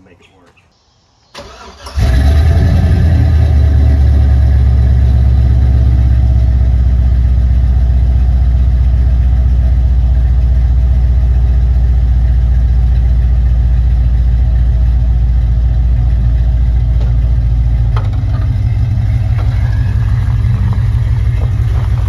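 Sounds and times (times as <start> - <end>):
vee eight engine idling loudly: 3.2 - 22.0.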